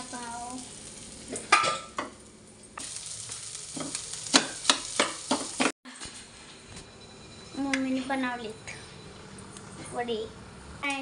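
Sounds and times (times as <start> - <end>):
hot oil sizzling: 0.0 - 5.8.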